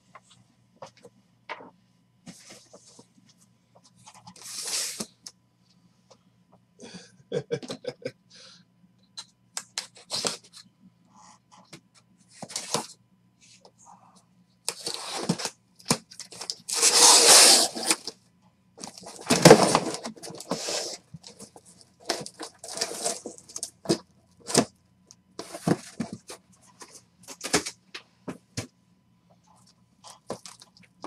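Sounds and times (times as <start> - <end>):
cardboard tearing and scraping: 14.7 - 15.5, 16.4 - 18.1, 18.8 - 21.0, 22.0 - 24.7.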